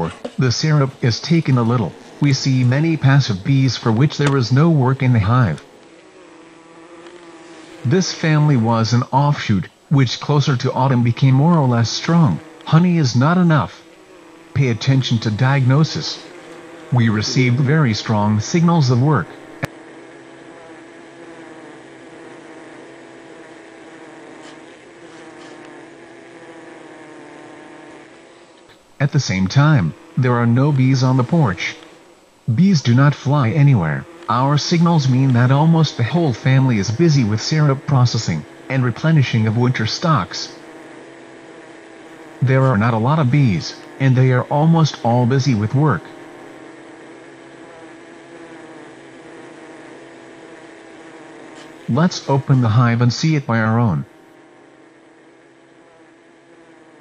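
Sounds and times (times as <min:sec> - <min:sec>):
honeybee hive humming: 0:00.0 - 0:57.0.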